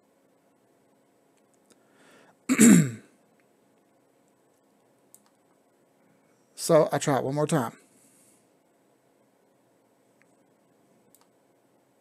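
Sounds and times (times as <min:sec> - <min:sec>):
man clearing his throat: 0:02.5 - 0:03.1.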